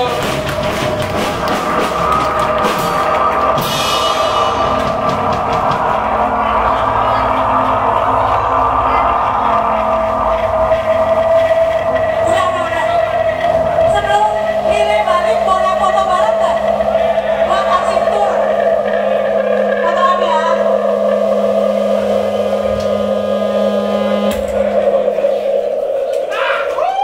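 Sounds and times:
drum and cymbal hits: 0.0 - 27.0
electric guitar feedback drone: 0.0 - 27.0.

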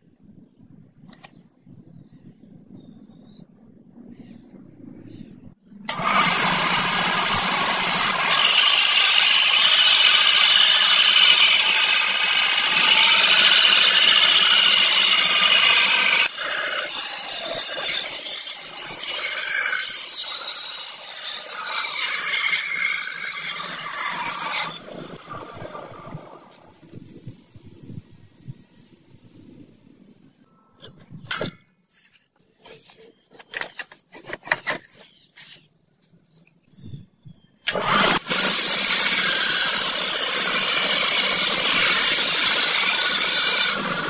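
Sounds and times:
belt grinder grinding steel: 5.9 - 26.2, 37.7 - 44.0.

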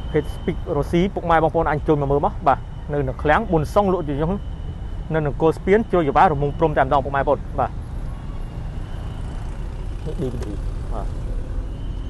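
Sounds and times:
motor vehicles rumbling: 0.0 - 12.0.

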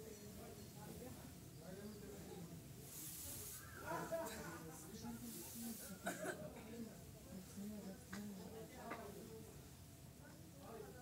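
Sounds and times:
low murmured speech: 0.0 - 11.0.

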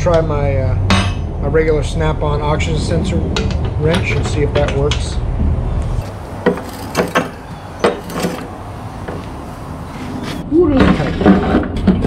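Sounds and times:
low rumble: 0.8 - 6.4
metal tools clacking: 6.0 - 8.6.

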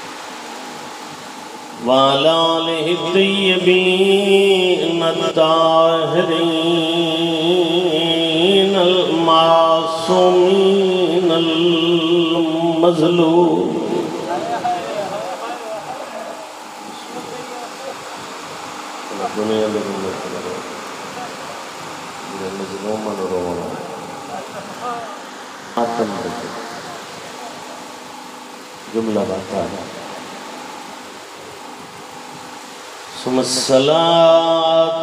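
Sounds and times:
microphone background hiss: 0.0 - 35.0
steady background noise: 0.0 - 35.0
man chanting over loudspeakers: 1.8 - 17.8, 22.2 - 27.6, 33.1 - 35.0.

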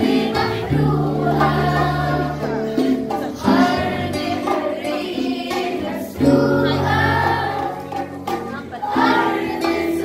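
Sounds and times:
girls singing in unison: 0.0 - 8.1, 8.7 - 10.0
acoustic guitar: 0.0 - 10.0.

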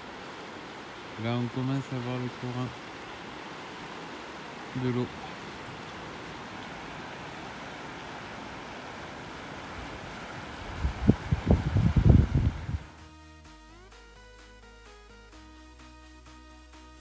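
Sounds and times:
river rushing: 0.0 - 12.9
wind buffeting microphone: 8.0 - 12.9
background music: 12.7 - 17.0.

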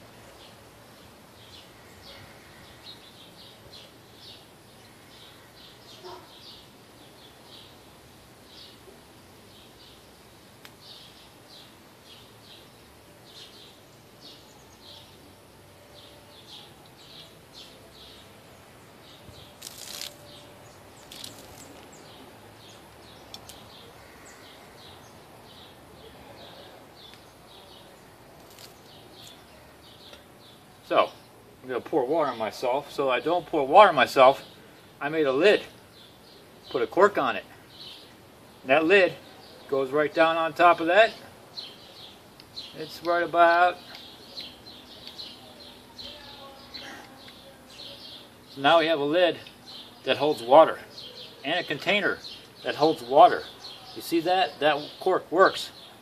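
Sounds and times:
background hiss: 0.0 - 56.0
small birds chirping: 0.0 - 56.0.

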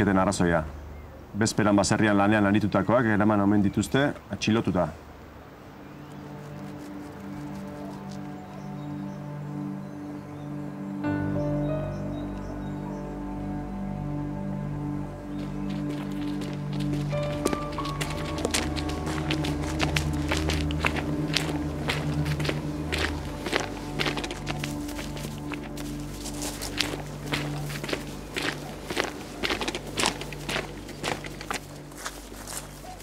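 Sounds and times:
slow background music: 5.7 - 33.0
footsteps on dirt track: 6.3 - 8.9, 15.3 - 33.0.

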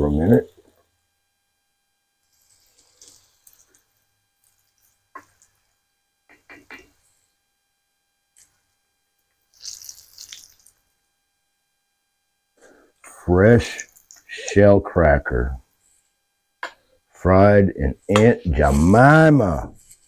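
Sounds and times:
fish sizzling in oil: 9.5 - 10.9.

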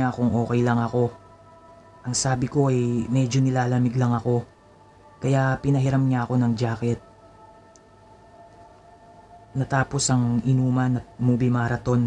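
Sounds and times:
faint music drone: 0.0 - 12.0.

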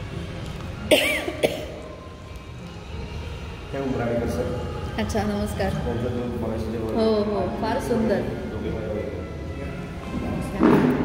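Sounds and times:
person coughing: 0.9 - 1.8.

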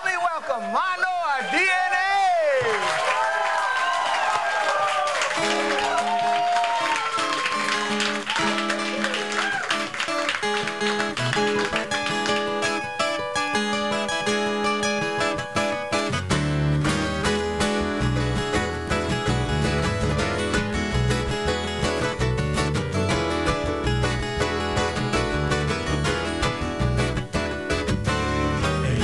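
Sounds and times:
acoustic guitar plucked and strummed: 5.4 - 6.2, 7.0 - 29.0
deep bass line: 16.0 - 29.0.

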